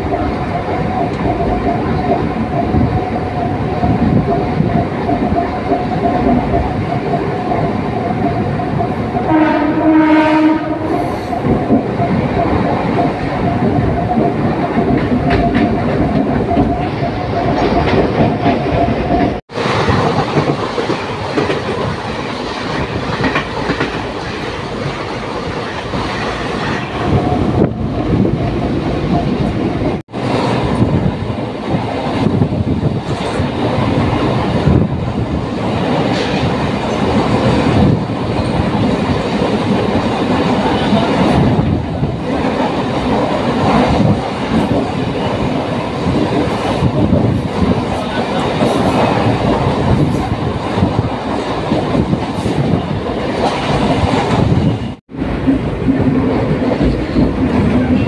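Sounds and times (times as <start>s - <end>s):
train wheels clattering over rails: 3.8s - 58.0s.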